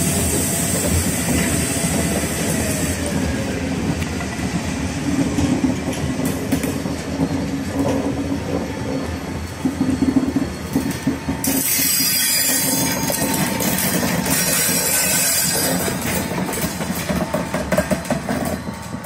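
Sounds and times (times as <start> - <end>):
diesel locomotive engine hum: 0.0 - 19.0
train wheels clicking over rail joints: 0.0 - 19.0.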